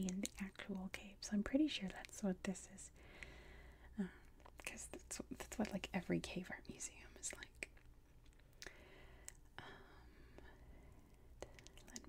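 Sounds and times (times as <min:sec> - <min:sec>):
faint whispering: 0:03.9 - 0:07.7, 0:09.6 - 0:12.0.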